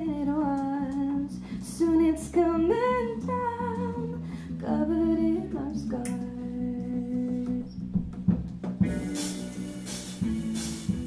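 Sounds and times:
live band playing: 8.6s - 11.0s.

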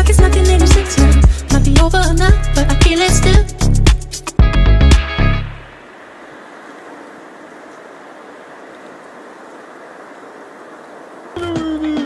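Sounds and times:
music with low beat: 0.0s - 5.6s.

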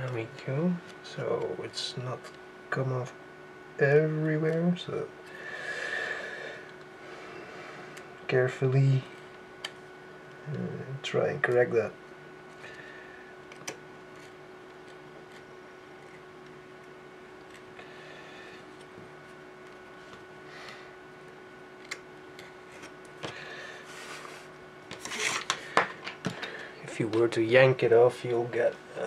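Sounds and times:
knife scraping along ruler: 25.0s - 25.5s
ruler scraping: 25.0s - 25.6s.

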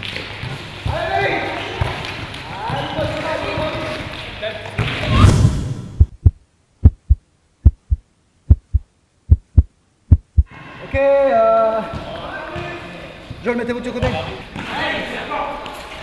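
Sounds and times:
whoosh: 5.0s - 6.3s
heartbeat sound effect: 5.1s - 10.5s.

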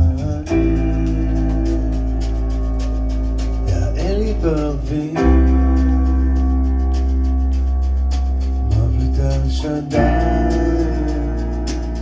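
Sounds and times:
bending melody line: 0.0s - 12.0s
live band playing: 0.0s - 12.0s.

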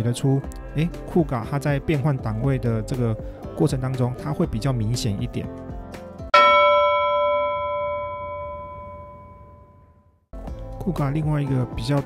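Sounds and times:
bell-like chime ringing: 6.3s - 10.2s.

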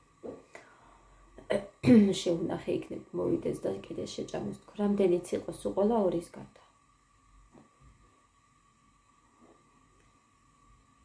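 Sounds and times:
woman coughing: 1.4s - 2.1s
woman speaking: 1.5s - 6.7s.

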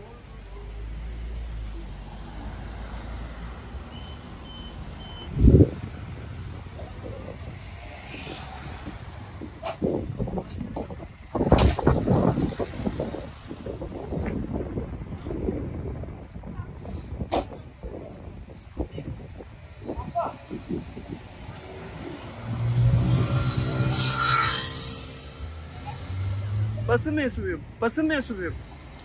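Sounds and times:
street and vehicle rumble: 0.0s - 29.0s
people calling out and talking: 14.9s - 24.0s, 25.4s - 29.0s.

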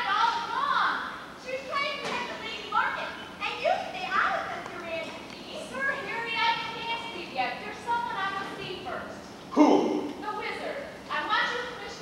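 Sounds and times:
actors speaking in a hall: 0.0s - 12.0s.

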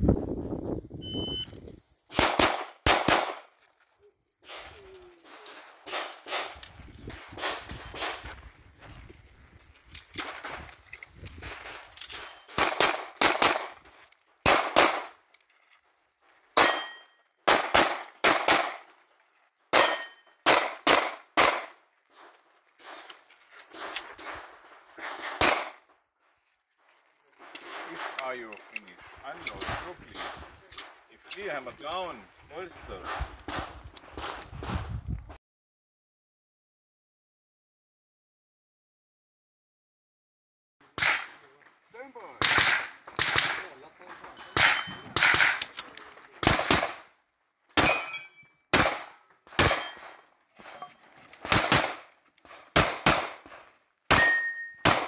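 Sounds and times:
shot timer beep: 1.0s - 1.5s
pistol shots: 2.1s - 3.5s, 5.8s - 6.6s, 12.2s - 13.8s, 14.4s - 15.2s, 16.6s - 18.8s, 19.7s - 21.8s, 25.0s - 25.8s, 41.0s - 41.4s, 42.4s - 43.8s, 44.5s - 45.8s, 46.4s - 47.1s, 47.8s - 50.2s, 51.4s - 52.1s, 52.7s - 55.0s.

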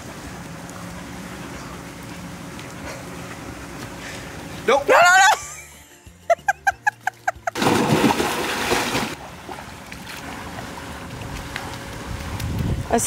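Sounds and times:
water splashing: 7.2s - 12.6s.

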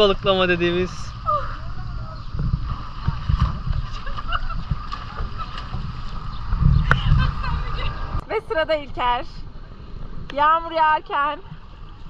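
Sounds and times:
uneven low rumble: 0.0s - 8.3s.

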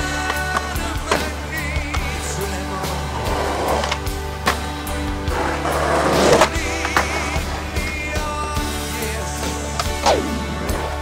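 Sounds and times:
music soundtrack: 0.0s - 11.0s
skateboard wheels rolling: 0.0s - 11.0s.

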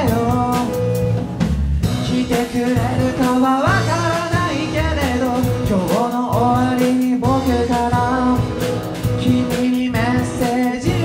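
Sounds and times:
young man singing: 0.0s - 1.2s, 2.0s - 11.0s
rock band playing live: 0.0s - 11.0s.

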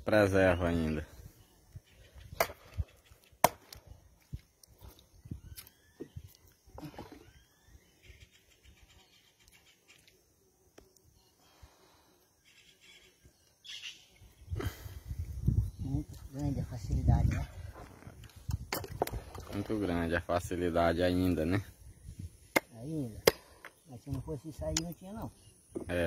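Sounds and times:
bird calls: 4.8s - 10.3s, 11.1s - 15.0s.

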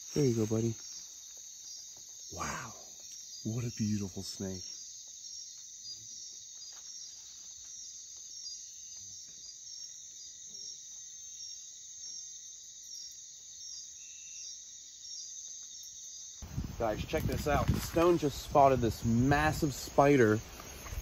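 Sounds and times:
crickets and insects trilling: 0.0s - 21.0s
pulsing insect call: 0.0s - 21.0s.

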